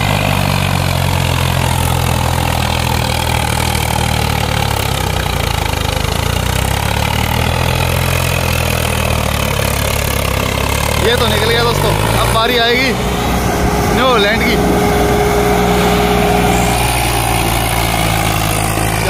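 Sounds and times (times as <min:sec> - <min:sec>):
diesel tractor engines droning: 0:00.0 - 0:19.0.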